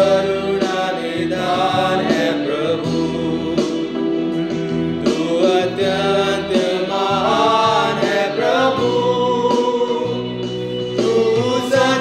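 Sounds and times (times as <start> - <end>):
worship hymn with instrumental backing: 0.0 - 12.0.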